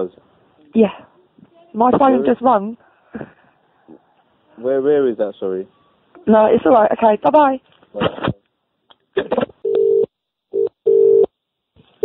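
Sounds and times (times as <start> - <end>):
telephone line beeps: 9.6 - 11.3.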